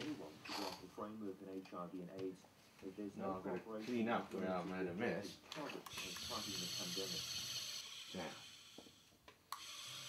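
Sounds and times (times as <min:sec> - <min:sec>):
electric eraser whirring: 0:05.9 - 0:10.0.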